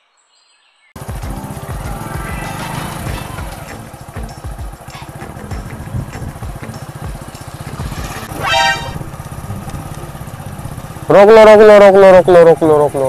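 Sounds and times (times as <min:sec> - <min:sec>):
motorcycle engine running: 0:01.0 - 0:13.0
high-pitched tone: 0:07.8 - 0:09.2.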